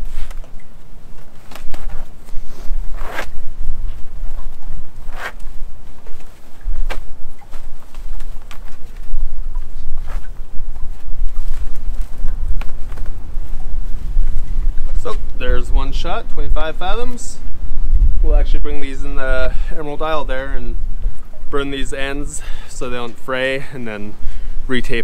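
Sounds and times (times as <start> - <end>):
wind rumble on microphone: 0.0 - 25.0
rope swishing through gloved hands: 1.2 - 15.3.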